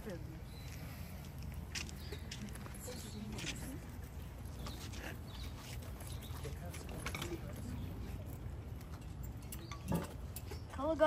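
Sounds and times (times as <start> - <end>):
distant murmurs: 0.0 - 11.0.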